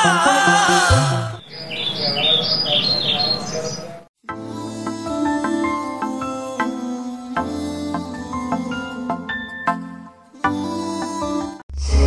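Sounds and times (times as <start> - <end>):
small birds chirping: 1.4 - 4.0.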